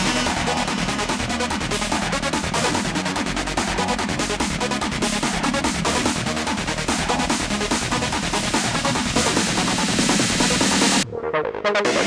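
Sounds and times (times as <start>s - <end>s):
electronic dance beat: 0.0s - 12.0s
sliding acid synth line: 0.0s - 12.0s.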